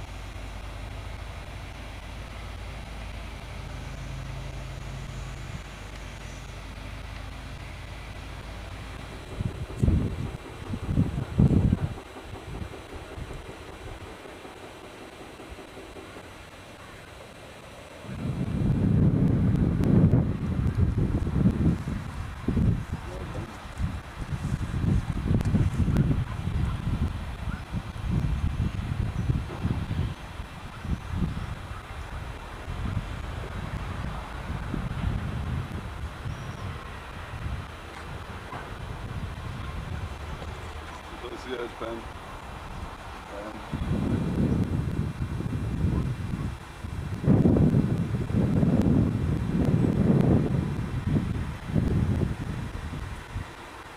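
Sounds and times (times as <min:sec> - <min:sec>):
wind buffeting microphone: 0:00.0 - 0:53.9.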